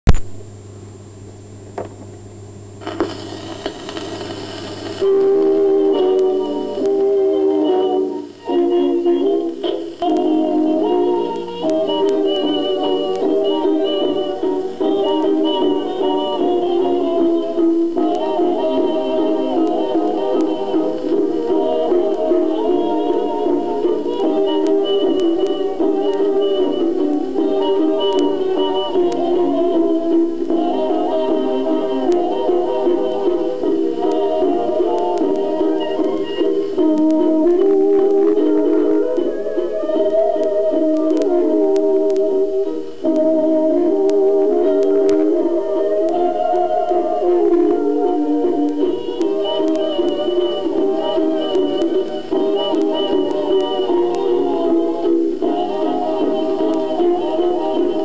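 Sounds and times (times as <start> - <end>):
record hiss: 0.0 - 58.0
record surface clicks: 0.1 - 0.5, 2.8 - 5.4, 40.4 - 43.3, 48.6 - 55.5
crackling clicks: 0.1 - 0.6, 1.3 - 58.0
low steady hum: 0.1 - 58.0.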